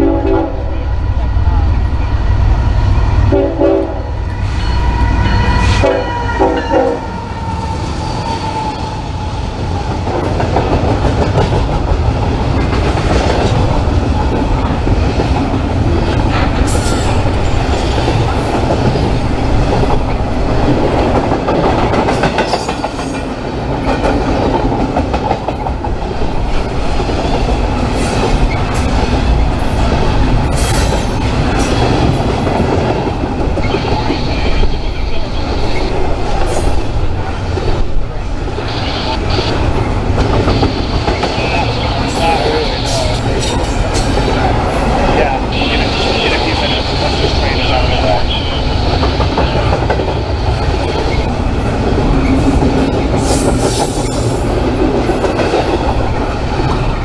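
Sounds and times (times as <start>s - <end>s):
freight train rumbling past: 0.0s - 57.0s
train cars clanking: 0.0s - 57.0s.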